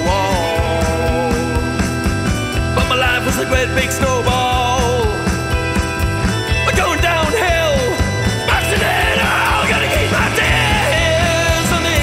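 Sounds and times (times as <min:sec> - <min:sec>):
garage rock band playing: 0:00.0 - 0:12.0.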